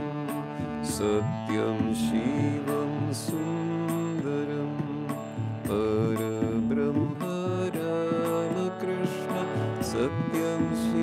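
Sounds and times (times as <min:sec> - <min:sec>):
harmonium playing hymn melody: 0:00.0 - 0:11.0.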